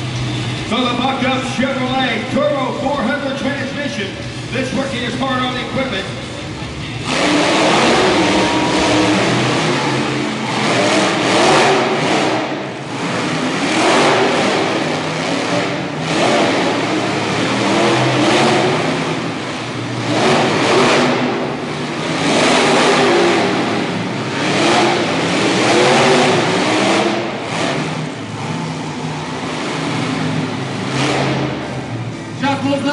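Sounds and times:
truck engines revving: 0:00.0 - 0:32.9.

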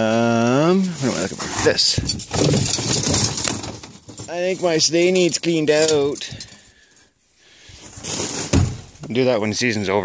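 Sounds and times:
gear scraping and rattling: 0:00.8 - 0:06.7.

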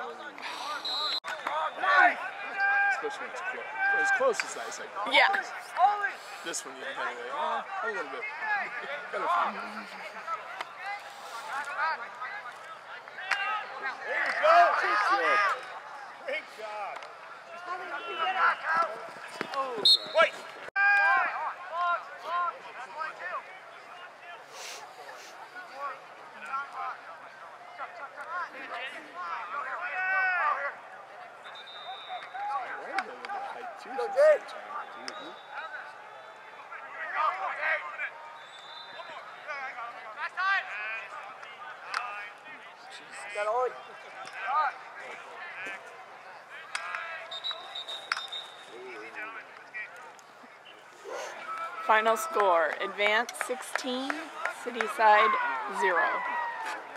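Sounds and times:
people calling and shouting: 0:00.0 - 0:56.9
people shouting: 0:01.3 - 0:04.4, 0:19.6 - 0:22.0, 0:54.3 - 0:56.9.

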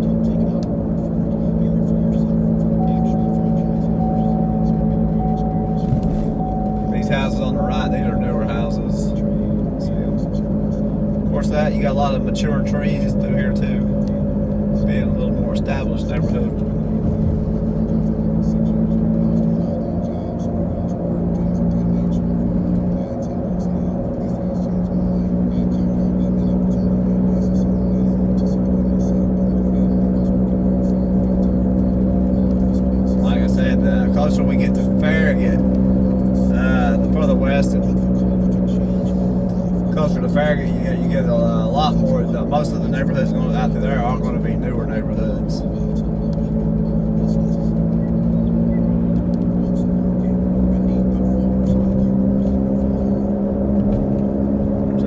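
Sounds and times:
car engine drone: 0:00.0 - 0:55.0
road noise inside car: 0:00.0 - 0:55.0
person speaking: 0:01.5 - 0:14.1.

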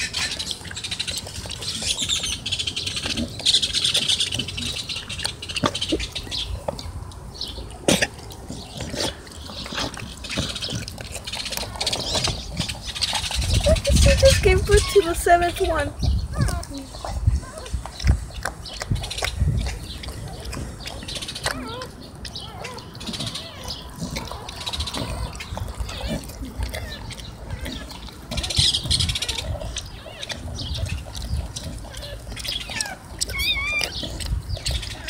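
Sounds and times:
puppy squeaking: 0:21.4 - 0:30.9, 0:31.6 - 0:35.0.

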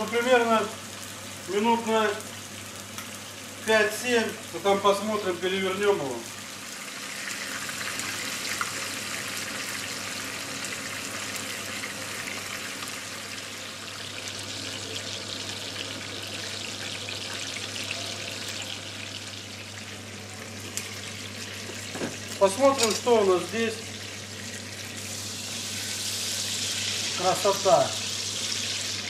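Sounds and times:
chicken sizzling in hot oil: 0:00.0 - 0:29.0.

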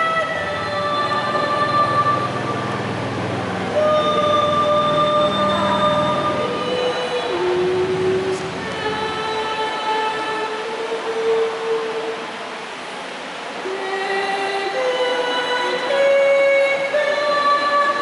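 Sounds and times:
women singing a hymn: 0:00.0 - 0:12.4, 0:13.6 - 0:18.0.

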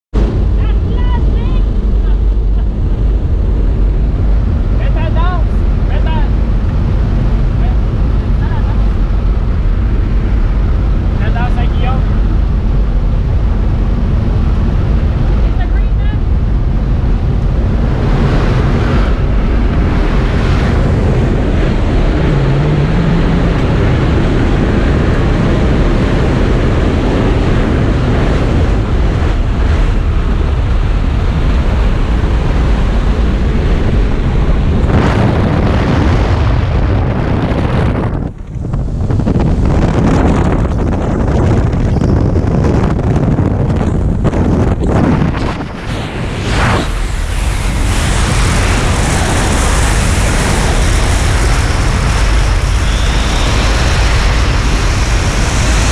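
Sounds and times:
wind noise: 0:00.1 - 0:55.9
plane engine and propeller drone: 0:00.2 - 0:55.9.

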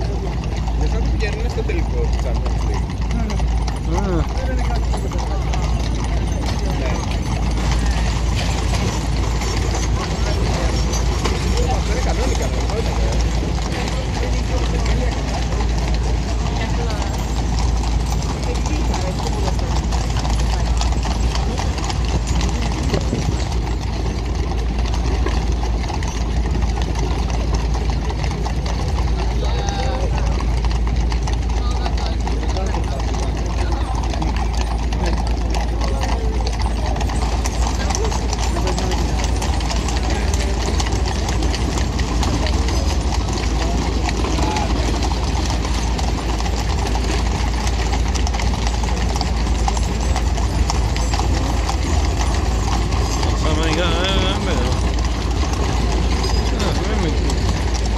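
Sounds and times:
indistinct chatter of passers-by: 0:00.0 - 0:57.9.

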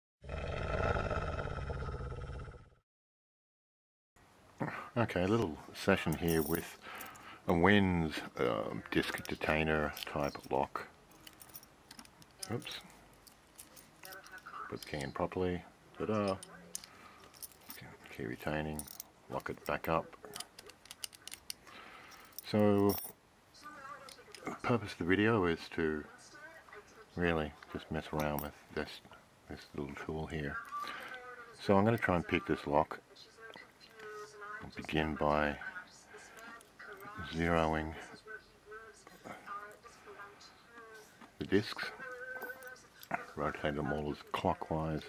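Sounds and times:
faint metallic padlock clicks: 0:11.1 - 0:15.1, 0:18.8 - 0:23.1.

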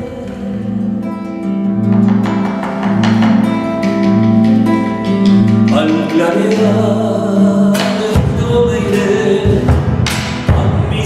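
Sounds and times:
nylon-string guitar strummed: 0:00.0 - 0:11.0
drum struck with sticks: 0:01.9 - 0:07.1, 0:07.7 - 0:11.0.

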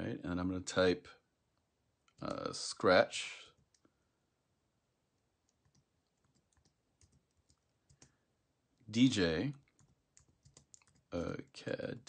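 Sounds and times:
faint keyboard keystrokes: 0:05.4 - 0:08.2, 0:09.6 - 0:11.1.

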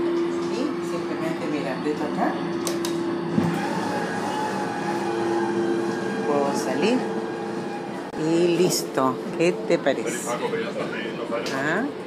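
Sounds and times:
train rumble from inside: 0:00.0 - 0:12.0.

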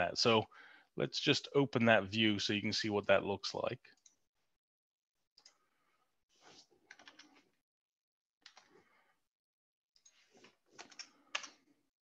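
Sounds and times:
faint keyboard typing: 0:06.9 - 0:07.5, 0:10.0 - 0:11.7.

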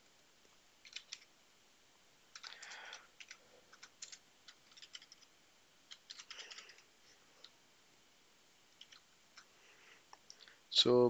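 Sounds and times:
faint keyboard typing: 0:00.4 - 0:01.3, 0:02.3 - 0:07.6, 0:08.7 - 0:10.5.

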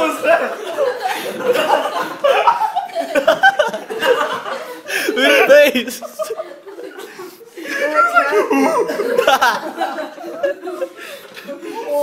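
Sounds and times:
young people laughing: 0:00.0 - 0:12.0.

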